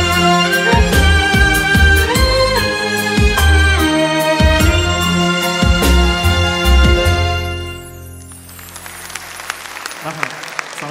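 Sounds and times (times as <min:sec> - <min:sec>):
audience applauding: 0:08.2 - 0:10.9.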